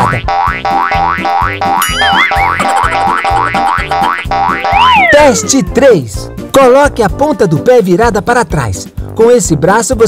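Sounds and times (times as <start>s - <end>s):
boing-like glides: 0.0s - 5.1s
playful cartoon music: 0.0s - 8.8s
wobbling warble: 0.7s - 5.4s.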